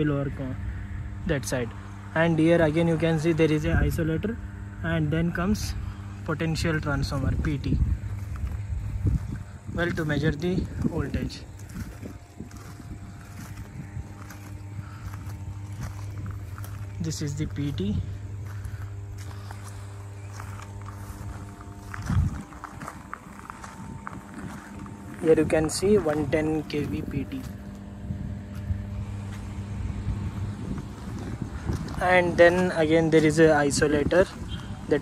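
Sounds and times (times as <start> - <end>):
low electrical hum: 0.0 - 35.0
low irregular rumble: 0.0 - 35.0.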